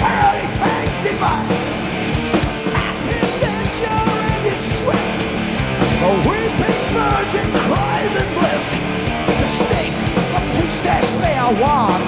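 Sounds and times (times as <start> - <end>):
bass guitar: 0.0 - 12.0
distorted guitars: 0.0 - 12.0
drums: 0.0 - 12.0
man singing high vocal line: 2.7 - 5.0.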